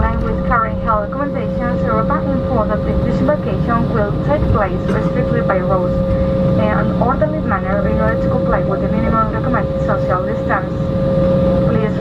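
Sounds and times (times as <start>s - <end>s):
announcement over cabin speaker: 0.0s - 12.0s
cabin drone: 0.0s - 12.0s
constant whine: 0.0s - 12.0s.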